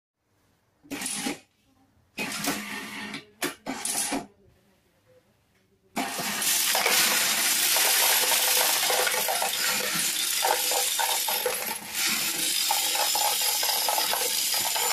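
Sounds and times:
coin sorter clattering: 6.0 - 14.9.

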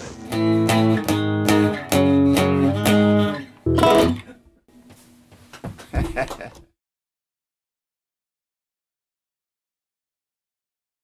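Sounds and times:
electric guitar strummed chords: 0.2 - 4.3.

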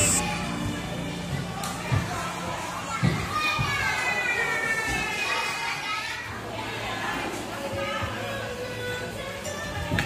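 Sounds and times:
children playing and calling out: 2.1 - 10.0.

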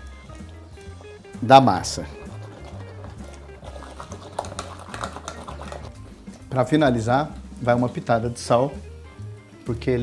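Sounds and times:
background music: 0.0 - 10.0
masher squishing fruit in pot: 0.2 - 8.3.

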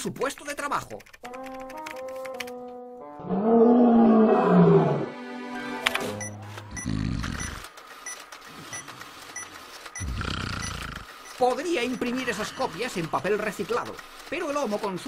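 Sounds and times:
roar-like growl: 3.2 - 5.1
printer whirring and ticking: 7.2 - 15.0.

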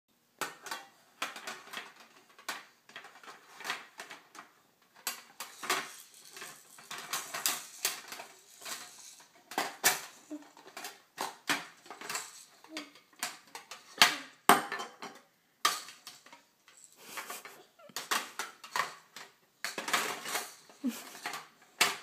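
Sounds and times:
plastic toys clattering in metal tin: 0.4 - 22.0.

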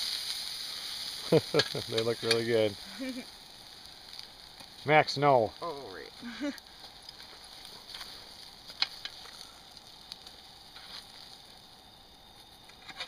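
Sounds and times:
meat sizzling on a grate: 0.0 - 13.0.

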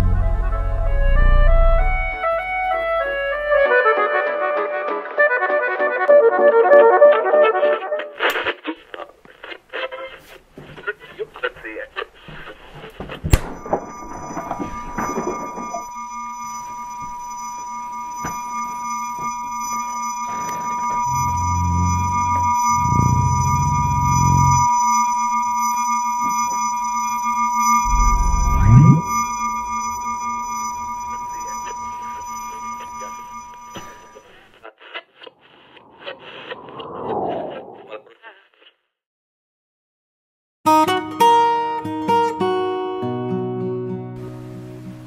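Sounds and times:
deep rumbles: 0.0 - 2.2, 21.0 - 24.7, 27.9 - 31.6
high electronic whine: 13.3 - 34.4
low rising sweep: 21.0 - 24.7, 27.8 - 33.4, 35.6 - 37.9.

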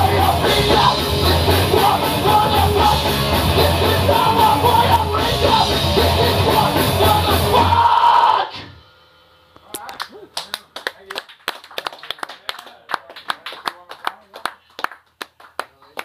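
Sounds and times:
loud live band playing: 0.0 - 8.0
audience clapping: 9.8 - 16.0.

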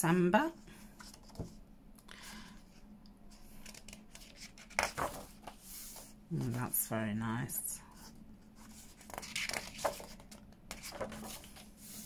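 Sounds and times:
paper rustling: 3.4 - 6.6, 8.6 - 12.0.

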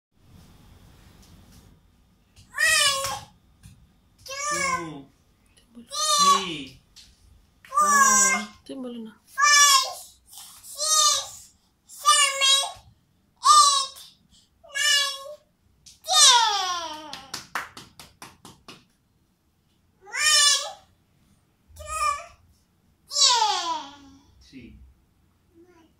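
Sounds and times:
toddler calling out: 2.5 - 3.3, 5.9 - 6.5, 7.7 - 8.6, 9.4 - 10.0, 20.0 - 20.8, 21.8 - 22.4, 23.1 - 24.2.

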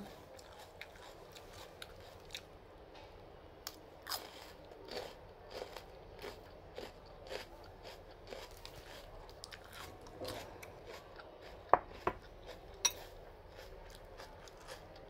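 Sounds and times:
person chewing crunchy fruit: 0.0 - 2.5, 3.6 - 15.0.

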